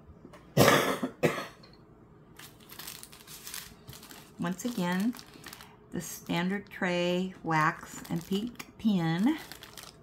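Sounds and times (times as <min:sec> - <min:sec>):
woman coughing: 0:00.6 - 0:01.6
plastic packaging rustling: 0:02.4 - 0:06.9, 0:07.5 - 0:10.0.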